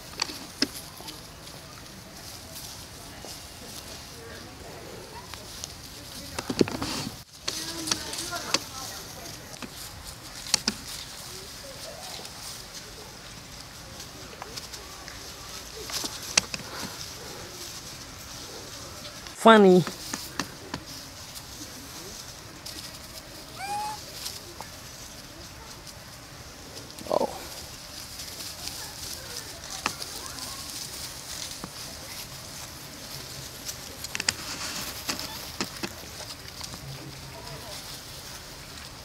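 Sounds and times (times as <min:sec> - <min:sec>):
monkeys scuffling clicks and taps: 0:00.0 - 0:04.0, 0:05.2 - 0:24.8, 0:26.8 - 0:39.0
high outdoor hiss: 0:00.0 - 0:39.0.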